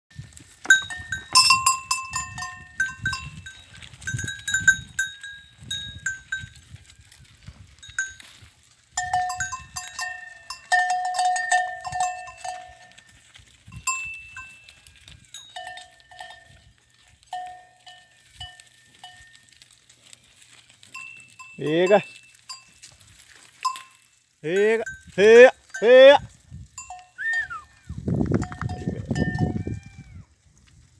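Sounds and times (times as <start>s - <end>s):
livestock bells clanking: 0.5s - 7.1s, 7.7s - 19.7s, 20.8s - 29.9s.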